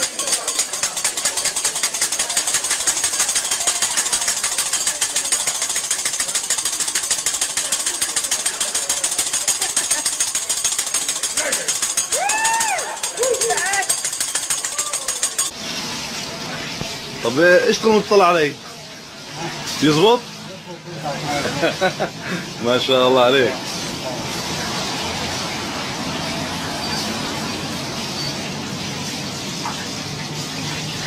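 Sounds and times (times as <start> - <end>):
metal spatula clattering on griddle: 0.0 - 15.5.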